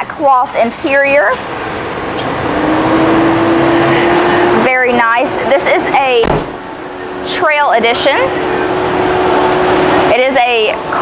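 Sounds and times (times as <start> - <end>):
vehicle engine humming: 0.6 - 11.0.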